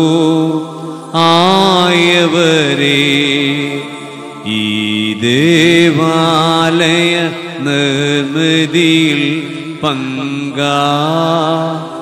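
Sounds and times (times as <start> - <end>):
liturgical chant singing: 0.0 - 12.0.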